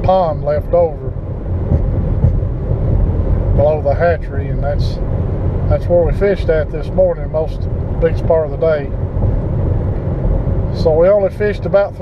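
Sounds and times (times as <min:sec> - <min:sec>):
road and wind rumble in car: 0:00.0 - 0:12.0.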